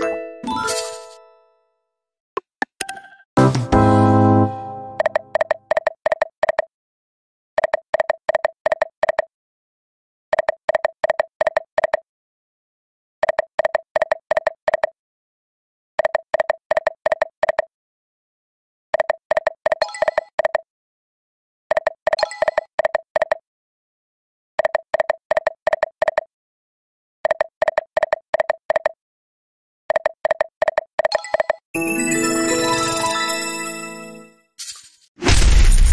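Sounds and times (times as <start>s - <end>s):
slot machine electronic beeps: 19.8s - 20.4s, 31.1s - 34.4s.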